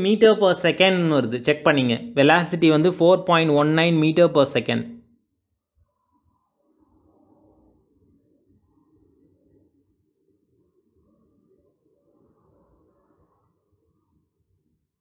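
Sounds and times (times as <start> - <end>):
cricket chirping: 0.0 - 15.0.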